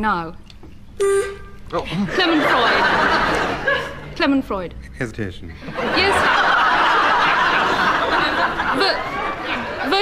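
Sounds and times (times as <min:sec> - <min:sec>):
audience laughing: 0:01.8 - 0:04.2, 0:05.6 - 0:10.0.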